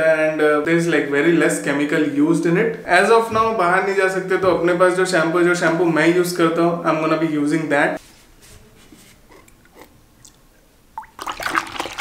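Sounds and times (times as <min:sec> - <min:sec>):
water swished in plastic bucket: 0:11.0 - 0:12.0.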